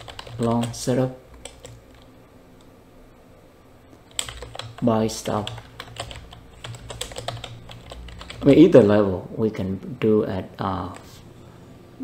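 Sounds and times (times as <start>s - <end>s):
computer keyboard typing: 0.0s - 2.1s, 4.0s - 8.7s.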